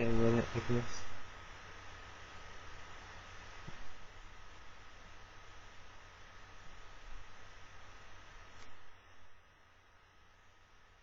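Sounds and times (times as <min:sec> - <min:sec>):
background hiss and low hum: 0:00.0 - 0:11.0.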